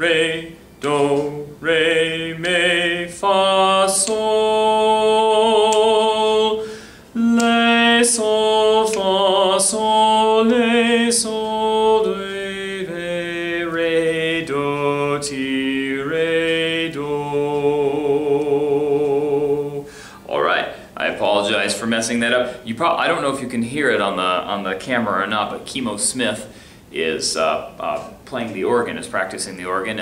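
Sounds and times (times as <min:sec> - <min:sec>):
man singing solfege syllables: 0:00.0 - 0:30.0.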